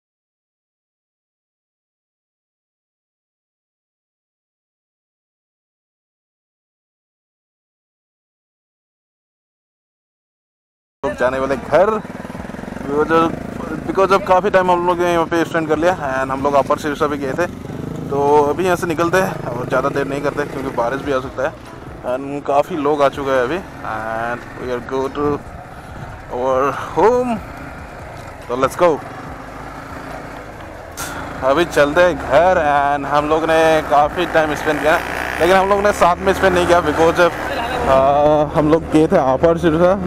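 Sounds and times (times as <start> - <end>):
people talking: 11.0 - 12.0, 12.8 - 17.5, 18.1 - 25.4, 26.3 - 27.4, 28.5 - 29.1, 31.0 - 40.0
motorcycle engine idling: 11.0 - 38.7
wind noise on microphone: 25.1 - 26.4.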